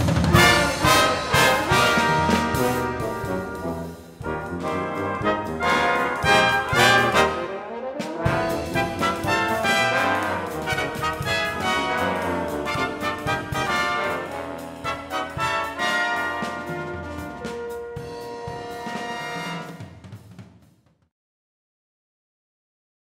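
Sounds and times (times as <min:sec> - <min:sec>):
brass ensemble playing: 0:00.0 - 0:20.2.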